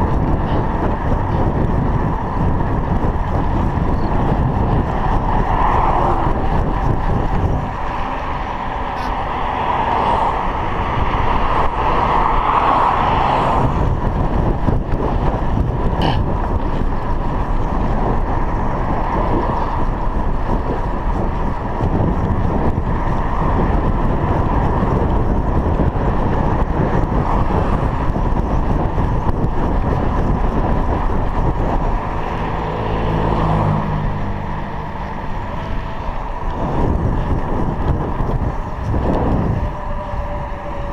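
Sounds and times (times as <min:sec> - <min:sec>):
bicycle tyre and road noise: 0:00.0 - 0:40.9
passing cars: 0:00.0 - 0:40.9
wind rush on microphone: 0:00.0 - 0:40.9.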